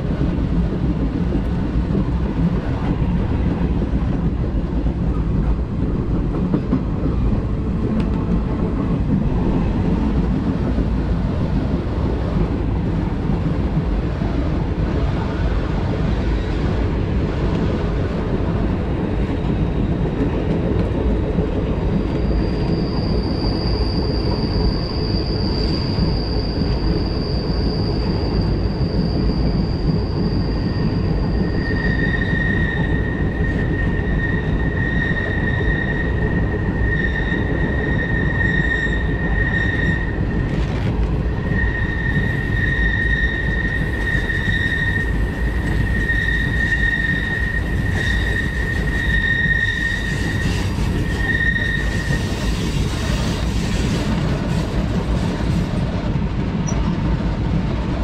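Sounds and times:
train rumbling: 0.0 - 58.0
train wheels squealing on rails: 0.0 - 58.0.

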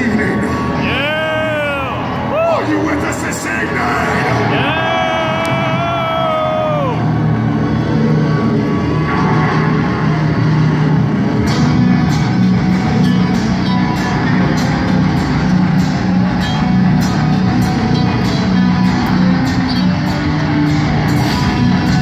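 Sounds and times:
guitar and bass drone: 0.0 - 22.0
live rock band: 11.3 - 22.0.

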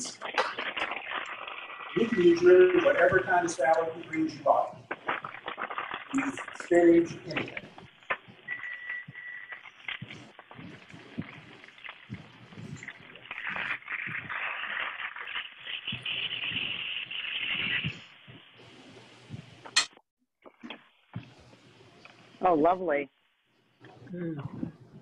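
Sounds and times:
plastic container crinkling: 0.0 - 8.3
rustling of salad leaves: 0.0 - 17.8.

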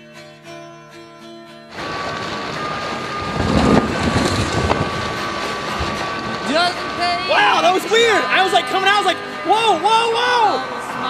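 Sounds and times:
fountain water splashing: 1.7 - 9.0
wind buffeting microphone: 1.8 - 8.2.

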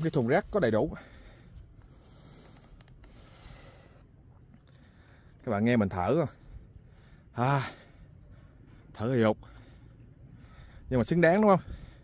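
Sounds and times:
man breathing hard: 0.9 - 5.4, 6.4 - 10.9, 11.6 - 12.0.

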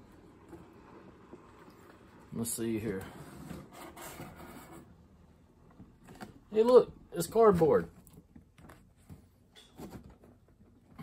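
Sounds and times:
cardboard rubbing and scraping: 2.9 - 5.0.

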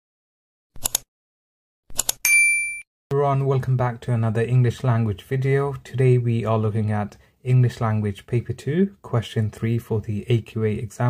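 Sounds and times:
notification bell ding: 2.3 - 2.8.

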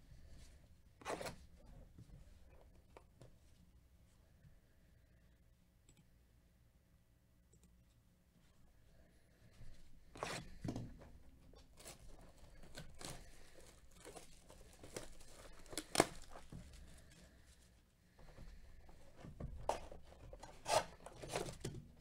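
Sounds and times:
plastic wrap crinkling and tearing: 11.8 - 16.9.

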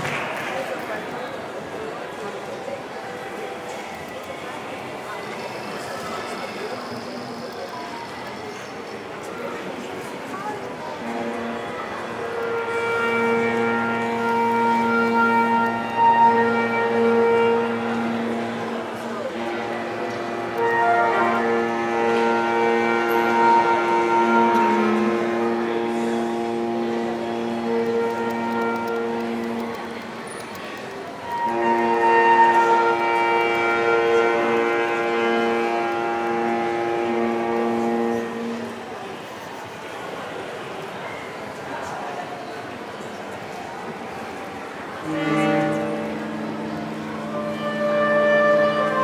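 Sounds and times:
wind band sustained chord: 10.6 - 30.2, 31.2 - 39.2, 44.8 - 49.0.

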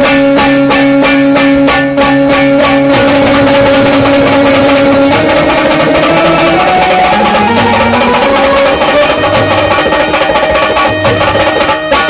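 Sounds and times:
live folk dance music: 0.0 - 12.0.

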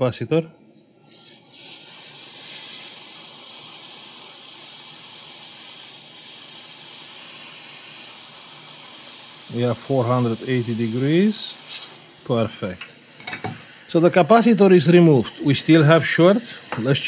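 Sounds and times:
hot air nozzle hissing: 1.0 - 17.0.

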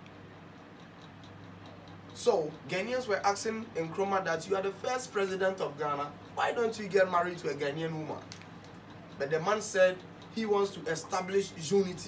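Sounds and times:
faint light ticks: 0.0 - 12.0
low electrical hum: 0.0 - 12.0.

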